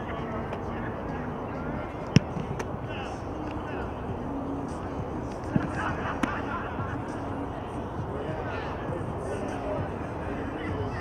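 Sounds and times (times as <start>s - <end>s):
foot kicking football: 2.1s - 2.7s.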